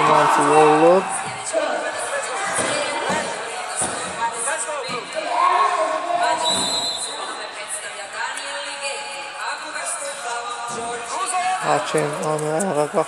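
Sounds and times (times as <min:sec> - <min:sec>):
voices: 0:00.0 - 0:13.0.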